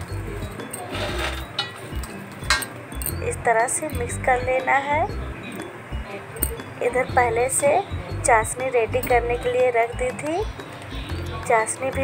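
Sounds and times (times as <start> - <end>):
peanuts rustling in steel plate: 0.7 - 3.2.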